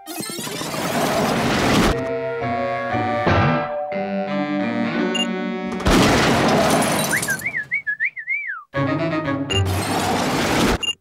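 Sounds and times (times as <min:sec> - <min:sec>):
orchestral music with strings: 0:02.0 - 0:05.8, 0:08.8 - 0:09.7
wavering whistle: 0:07.2 - 0:08.7.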